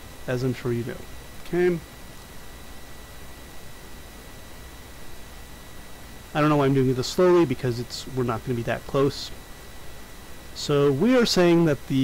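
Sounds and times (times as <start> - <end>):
faint high-pitched whine: 0.0 - 12.0
steady background hiss: 0.0 - 12.0.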